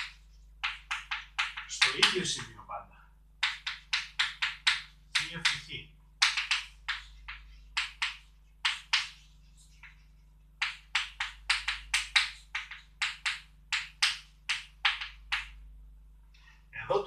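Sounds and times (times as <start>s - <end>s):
chalk tapping on blackboard: 0.0s - 2.2s, 3.4s - 15.6s
faint low hum: 0.0s - 17.0s.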